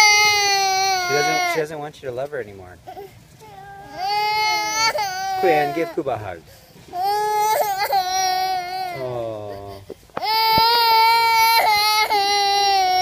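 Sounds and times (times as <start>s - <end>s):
toddler girl crying: 0.0s - 1.6s, 2.9s - 6.0s, 6.9s - 13.0s.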